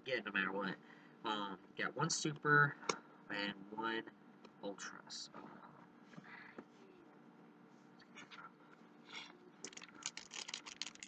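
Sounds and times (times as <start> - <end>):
foil wrapper crinkling: 9.6 - 11.0.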